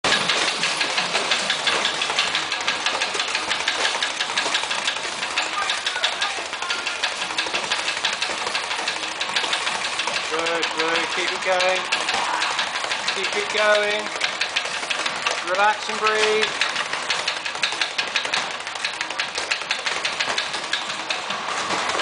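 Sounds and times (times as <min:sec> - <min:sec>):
speed bag rattling: 0:00.0 - 0:22.0.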